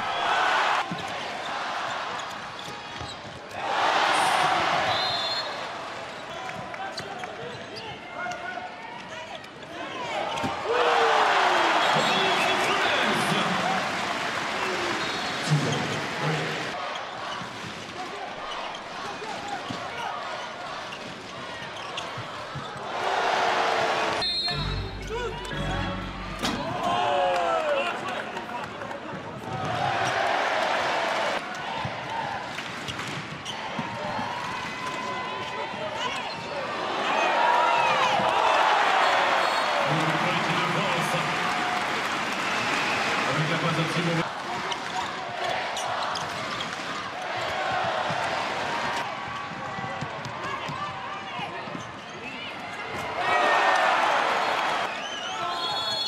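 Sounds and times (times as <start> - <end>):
crowd cheering: 0.0 - 7.0, 10.0 - 56.0.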